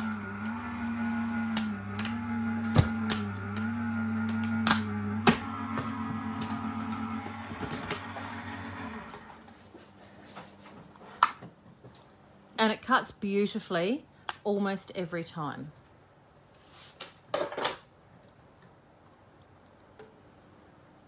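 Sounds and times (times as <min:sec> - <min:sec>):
die-cutting machine motor humming: 0:00.0 - 0:09.5.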